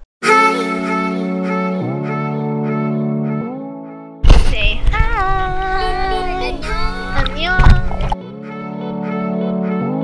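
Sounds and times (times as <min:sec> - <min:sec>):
water rumbling and splashing: 0:06.6 - 0:08.2.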